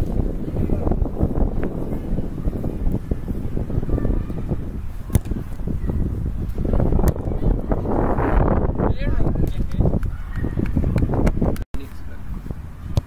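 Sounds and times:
wind buffeting microphone: 0:00.0 - 0:13.0
boot kicking rugby ball: 0:05.0 - 0:05.6.

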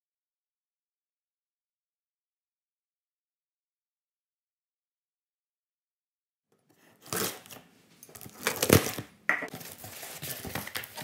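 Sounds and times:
packing paper crinkling: 0:07.0 - 0:11.0
cardboard box being handled: 0:08.3 - 0:11.0.

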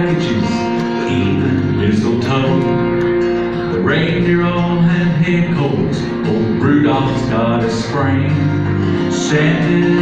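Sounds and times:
upright bass plucked: 0:00.0 - 0:10.0.

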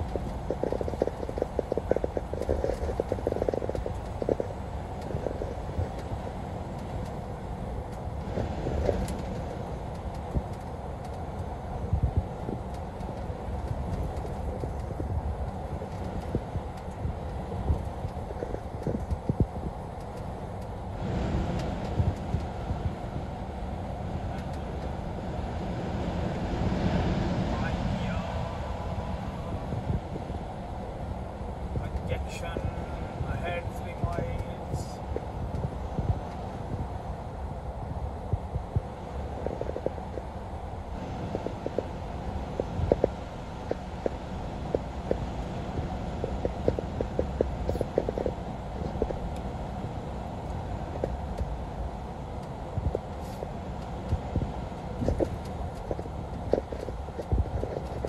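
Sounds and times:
tyres rumbling on wet road: 0:00.0 - 0:11.5
rain tapping on windshield: 0:00.0 - 0:20.8, 0:41.1 - 0:58.0
road noise inside moving vehicle: 0:00.0 - 0:58.0.

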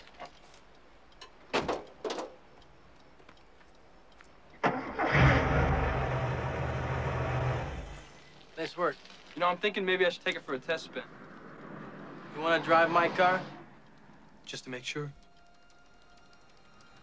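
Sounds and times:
car engine cranking and starting: 0:04.6 - 0:08.2.

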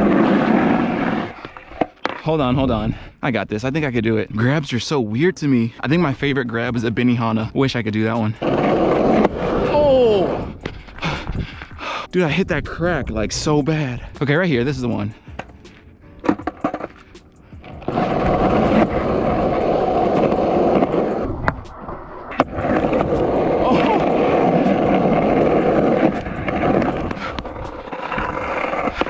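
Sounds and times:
skateboard wheels rolling on concrete: 0:00.0 - 0:29.0
skateboard clacking: 0:14.9 - 0:29.0.

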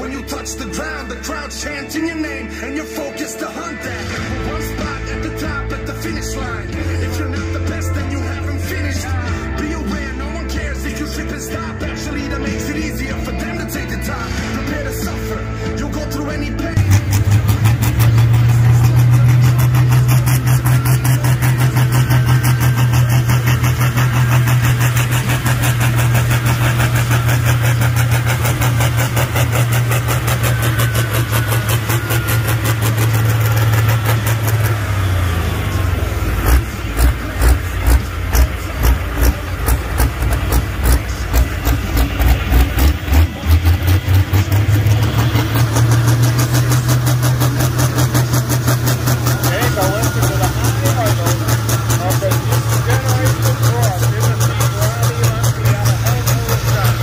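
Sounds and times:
tractor engine idling and revving: 0:00.0 - 0:57.0.

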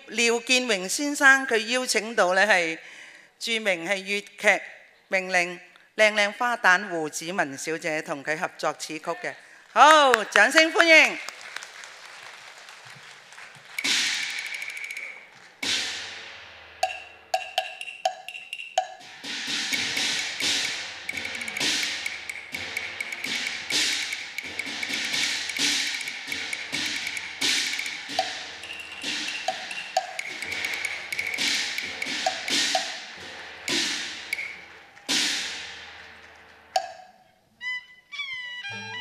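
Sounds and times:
wood block clacks: 0:13.8 - 0:15.8, 0:16.8 - 0:19.1, 0:19.7 - 0:35.4, 0:36.1 - 0:37.2
gong and cymbal strikes: 0:19.0 - 0:36.2.

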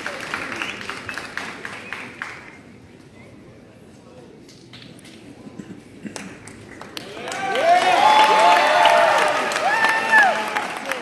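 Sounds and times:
crowd clapping in unison: 0:00.0 - 0:02.6, 0:06.0 - 0:11.0.

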